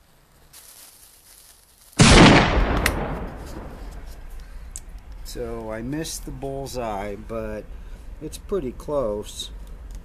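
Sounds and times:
faint hiss: 0.0 - 2.4, 3.2 - 10.0
potato cannon bang: 2.0 - 4.0.

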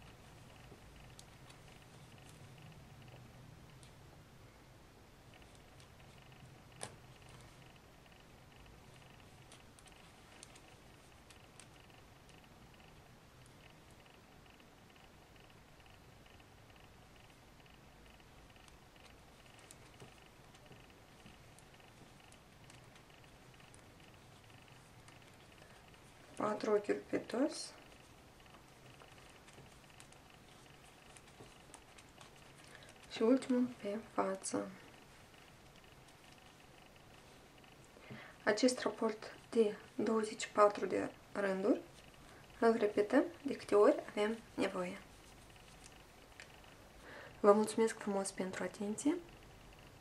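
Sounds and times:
knitting needles ticking: 0.0 - 4.0, 5.2 - 50.0.

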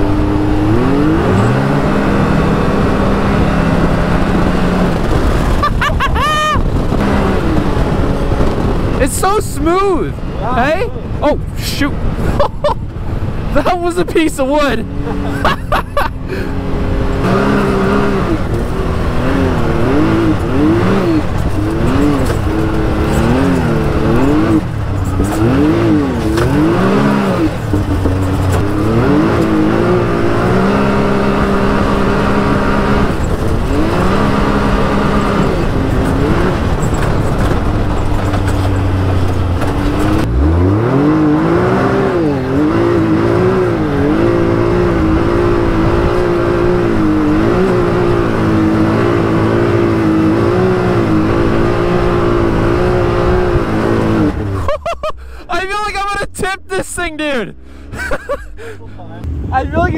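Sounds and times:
engine revving: 0.0 - 56.2, 57.2 - 59.9.

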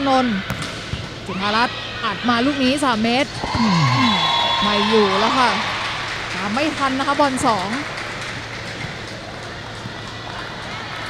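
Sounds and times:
indoor arena hall noise: 0.0 - 11.0.

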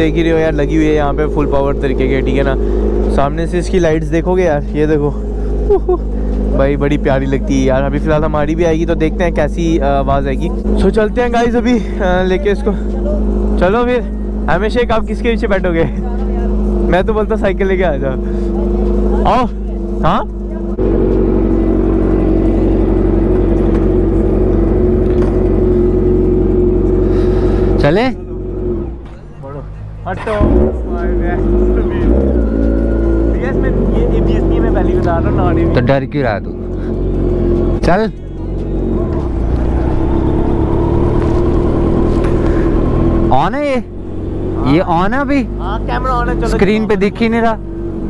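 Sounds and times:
motorcycle engine idling: 0.0 - 35.7.

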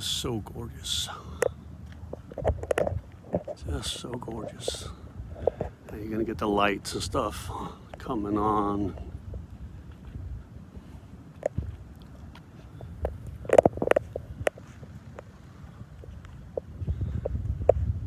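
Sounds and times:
wind buffeting microphone: 0.0 - 18.0.

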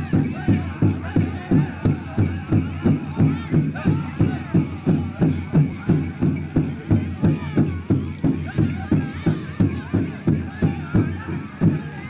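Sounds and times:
large drum beating steadily: 0.0 - 12.0
singers' high wavering voices: 0.0 - 12.0.

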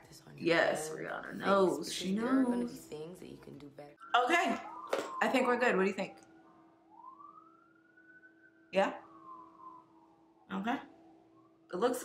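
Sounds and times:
faint siren wailing: 3.9 - 12.0.

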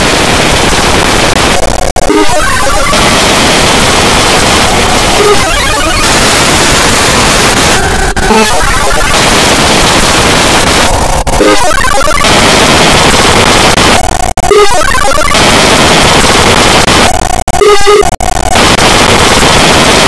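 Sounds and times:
harsh distorted noise: 0.0 - 20.0
garbled pitched fragment: 1.4 - 10.7, 11.3 - 19.4.

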